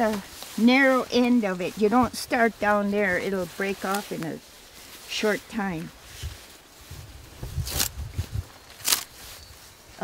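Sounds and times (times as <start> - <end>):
bark cracking: 8.6 - 9.2.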